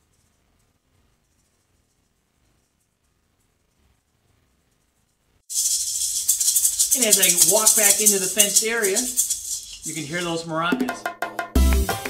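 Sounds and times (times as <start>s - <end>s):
maracas rattling: 4.8s - 10.9s.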